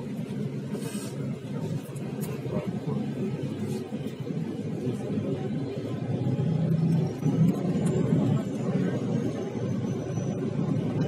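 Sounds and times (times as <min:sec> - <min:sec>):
faint high whine: 0:00.0 - 0:11.0
vehicle rumble from inside cabin: 0:00.0 - 0:11.0.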